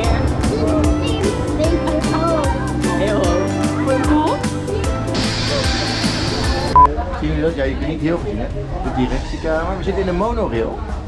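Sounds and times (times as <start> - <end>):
background music with steady beat: 0.0 - 6.9
hissing: 4.5 - 6.8.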